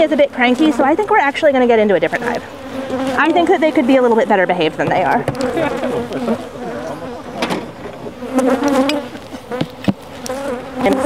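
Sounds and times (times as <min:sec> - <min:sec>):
honey bees buzzing: 0:00.0 - 0:11.0.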